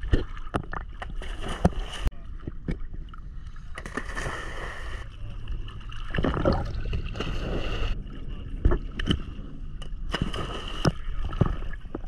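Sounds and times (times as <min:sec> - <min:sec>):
small waves lapping: 0:00.0 - 0:08.4.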